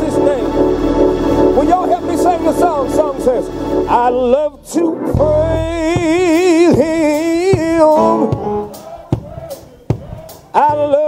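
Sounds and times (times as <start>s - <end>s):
keyboard and guitar chord: 0.0s - 5.6s.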